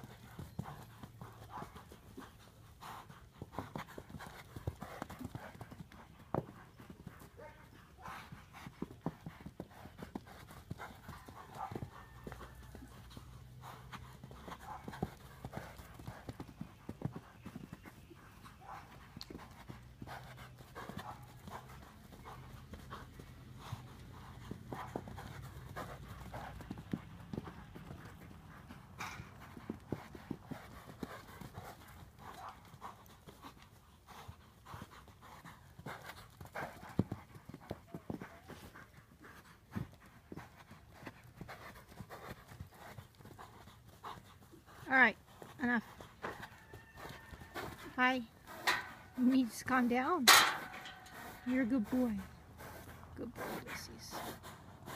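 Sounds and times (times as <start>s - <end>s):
horse hoofbeats on dirt: 0.0s - 54.9s.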